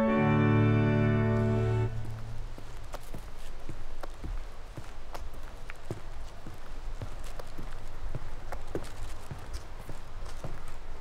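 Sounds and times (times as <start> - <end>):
footsteps on wooden deck: 1.9 - 11.0.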